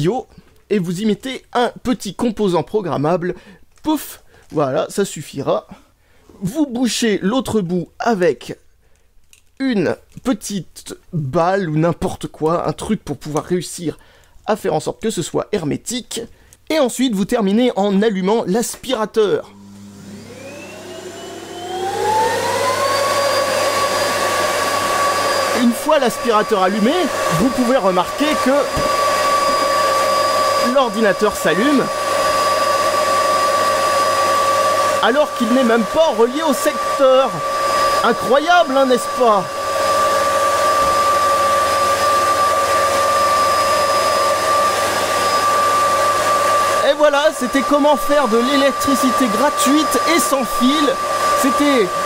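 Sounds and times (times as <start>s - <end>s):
vacuum cleaner motor whine: 19.5s - 52.0s.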